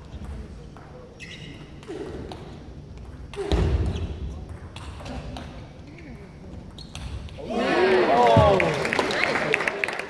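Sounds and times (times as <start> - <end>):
voices shouting: 7.4 - 8.7.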